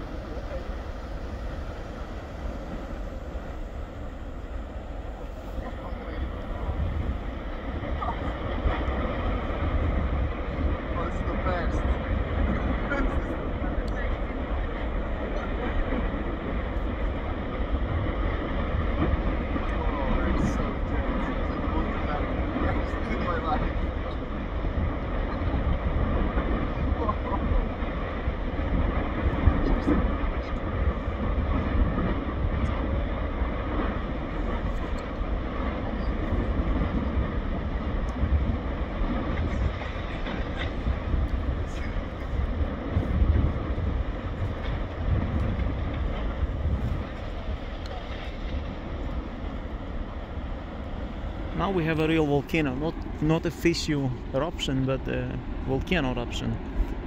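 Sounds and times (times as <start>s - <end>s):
volcano deep rumbling roar: 0.0s - 57.0s
faint crackles: 2.5s - 57.0s.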